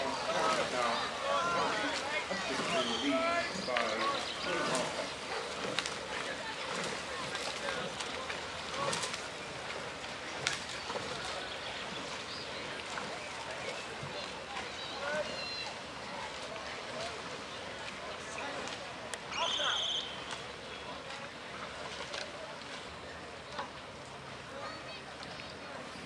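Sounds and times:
crowd chatter: 0.0s - 26.0s
outdoor noise: 0.0s - 26.0s.

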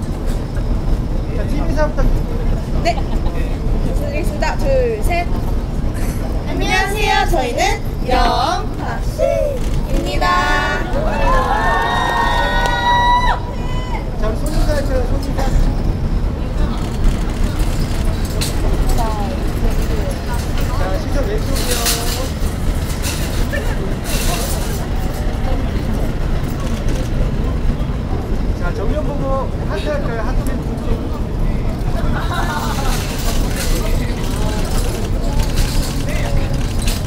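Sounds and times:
low rumble of road traffic: 0.0s - 37.0s
onlookers calling out: 8.0s - 14.2s.

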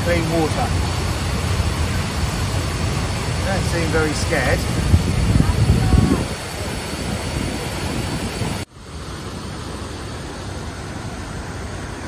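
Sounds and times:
stream water flowing: 0.0s - 12.0s.

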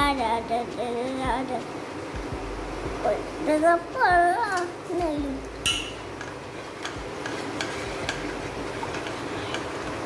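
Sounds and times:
batter stirring in pot: 6.1s - 10.0s.

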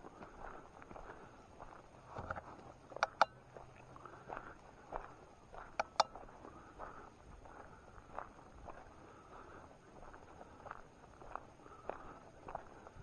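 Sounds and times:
footsteps on grassy dirt trail: 0.0s - 13.0s
sharp clicks: 2.9s - 3.4s, 5.8s - 6.2s.

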